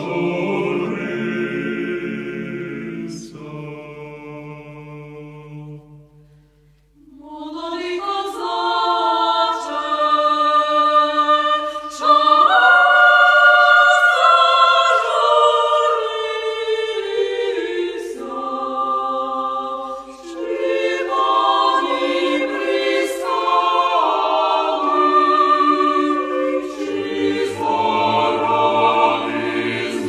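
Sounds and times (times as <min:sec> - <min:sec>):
choir singing unaccompanied: 0:00.0 - 0:06.1, 0:07.0 - 0:30.0.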